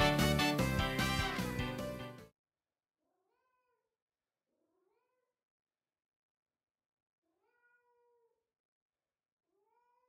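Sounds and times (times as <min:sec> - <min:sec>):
cat meowing: 0:03.3 - 0:03.8, 0:07.3 - 0:08.3, 0:09.6 - 0:10.0.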